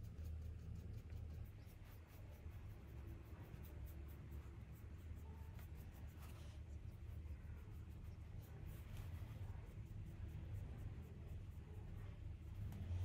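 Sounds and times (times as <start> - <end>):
low room hum: 0.0 - 13.0
paintbrush strokes on paper: 0.0 - 13.0.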